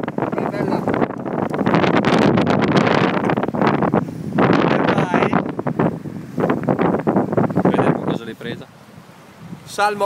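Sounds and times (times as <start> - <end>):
stream water rushing: 0.0 - 10.0
wind buffeting microphone: 0.0 - 10.0.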